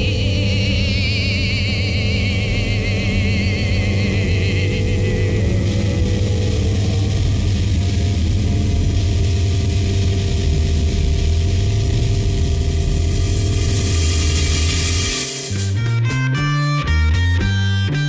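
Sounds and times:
low engine-like drone: 0:00.0 - 0:16.3
long held tones: 0:00.0 - 0:18.0.

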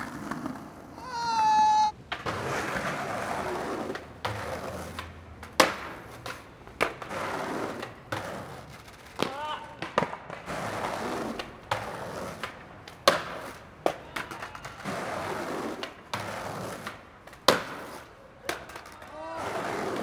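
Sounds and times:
skateboard clacks: 0:00.0 - 0:01.0, 0:01.7 - 0:20.0
skateboard wheels rolling on concrete: 0:00.0 - 0:20.0.

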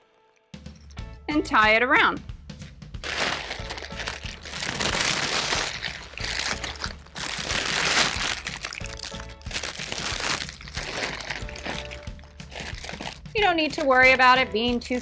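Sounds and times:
background music: 0:00.0 - 0:15.0
cellophane bag crinkling: 0:03.0 - 0:15.0.

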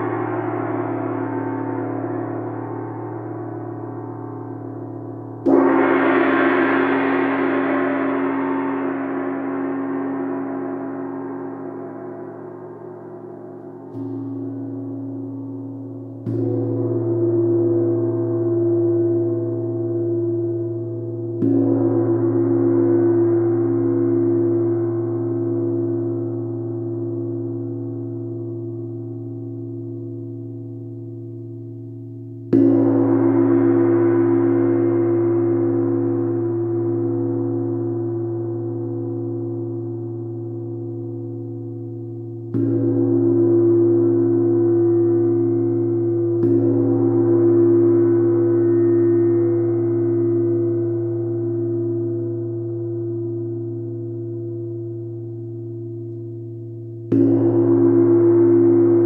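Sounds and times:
gong struck with soft mallet: 0:00.0 - 0:14.6.

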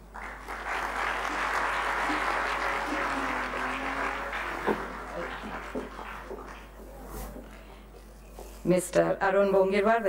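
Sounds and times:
audience applauding: 0:00.0 - 0:07.0.

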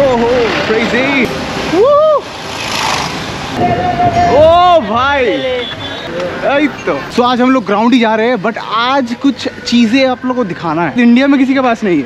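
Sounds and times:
street traffic: 0:00.0 - 0:12.0
wind noise: 0:02.6 - 0:05.9.

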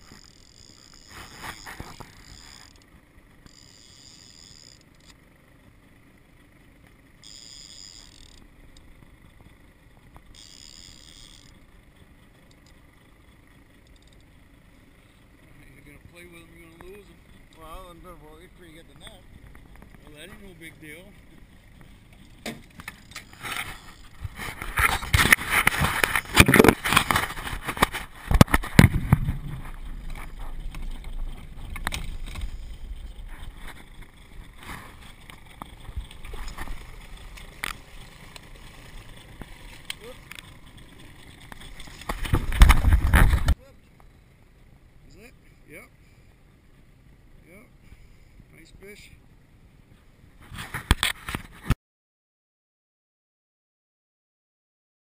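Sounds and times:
gear knocking against boat: 0:21.2 - 0:43.6.

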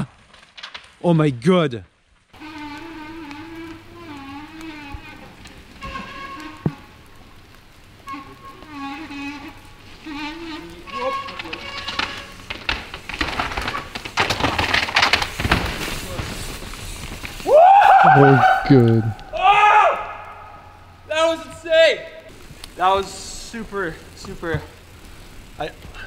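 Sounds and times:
mountain bike rattling over rocks: 0:02.3 - 0:17.8, 0:22.3 - 0:26.0.

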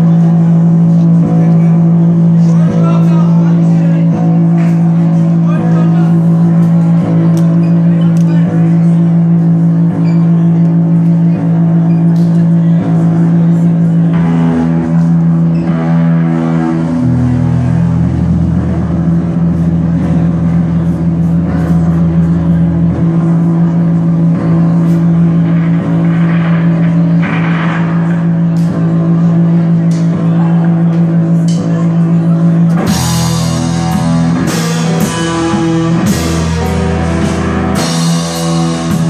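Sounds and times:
bass guitar: 0:00.0 - 0:39.0
distorted electric guitars droning: 0:00.0 - 0:39.0.

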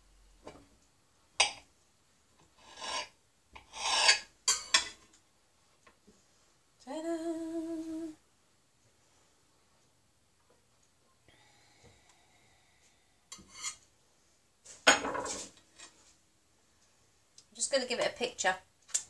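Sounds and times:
woman humming: 0:06.8 - 0:08.2.

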